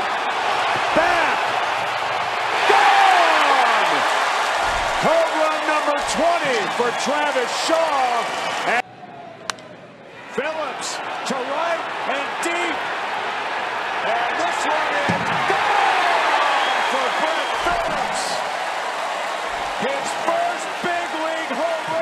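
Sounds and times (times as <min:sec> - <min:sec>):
crowd cheering: 0:00.0 - 0:22.0.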